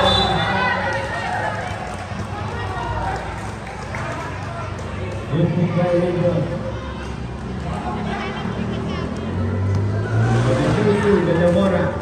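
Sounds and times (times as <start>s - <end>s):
players running on hard court: 0.0s - 10.0s
indistinct shouting and chatter: 0.0s - 12.0s.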